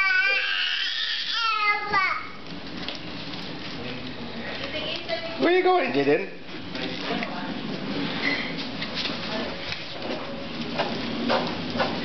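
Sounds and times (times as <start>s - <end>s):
cooler rolling and scraping on floor: 2.4s - 5.0s, 6.0s - 12.0s.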